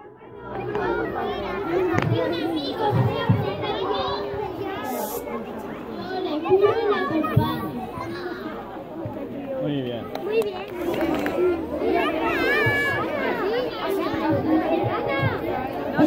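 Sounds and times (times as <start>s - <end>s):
children talking and calling out: 0.0s - 16.0s.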